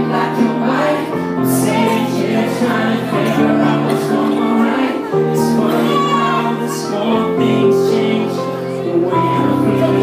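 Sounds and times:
several voices singing: 0:00.0 - 0:10.0.

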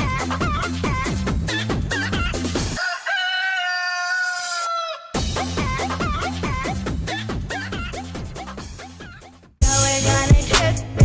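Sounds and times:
electronic dance music: 0:00.0 - 0:02.8, 0:05.2 - 0:11.0.

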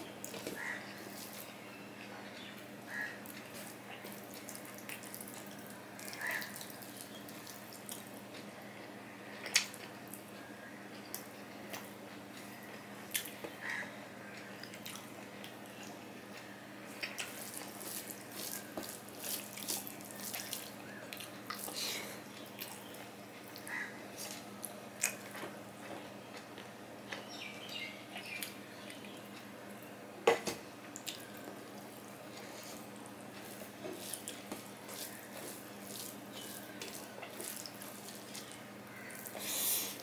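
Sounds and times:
wet chewing and mouth smacking: 0:14.6 - 0:25.3, 0:31.0 - 0:40.0
fingers squishing rice on plate: 0:17.0 - 0:21.8, 0:31.0 - 0:40.0.

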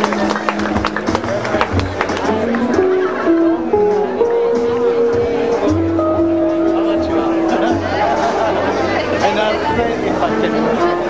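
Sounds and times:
jazz band playing ballad: 0:00.0 - 0:11.0.

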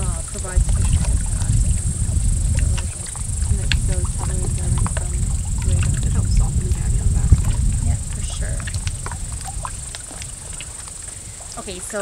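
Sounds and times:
woman speaking quietly: 0:00.0 - 0:08.7, 0:11.1 - 0:12.0
wind rumbling on microphone: 0:00.0 - 0:12.0.

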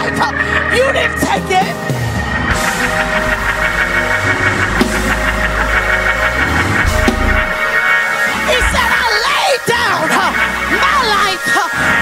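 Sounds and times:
keyboard chords: 0:00.0 - 0:12.0
bass notes: 0:02.0 - 0:09.2
drum hits: 0:02.5 - 0:09.0.

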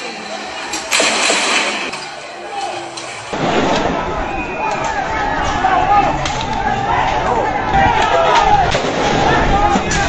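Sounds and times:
people shouting: 0:02.1 - 0:03.3, 0:03.9 - 0:10.0.

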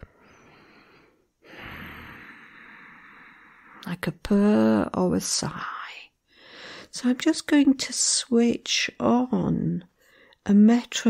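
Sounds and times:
woman breathing through nose: 0:00.0 - 0:03.8, 0:06.3 - 0:06.9.

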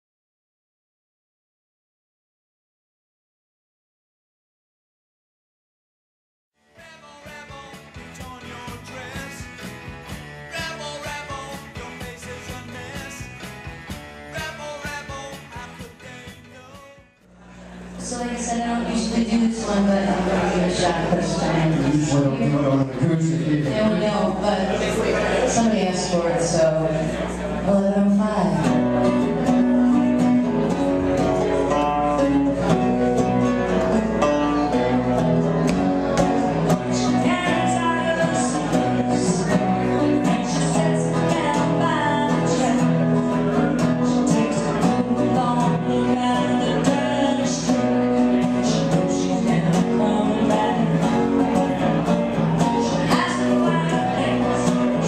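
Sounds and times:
acoustic guitar playing: 0:06.6 - 0:55.0
woman singing: 0:36.9 - 0:51.9, 0:52.6 - 0:55.0.

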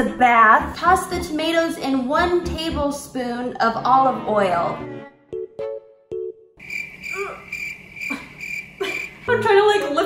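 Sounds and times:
woman's voice: 0:00.0 - 0:04.8, 0:09.3 - 0:10.0
crickets chirping: 0:06.6 - 0:09.3.

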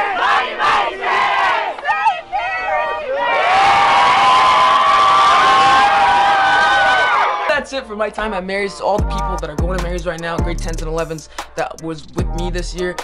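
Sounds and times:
crowd holding a loud yell: 0:00.0 - 0:07.5
crowd shouting and cheering: 0:00.0 - 0:07.9.

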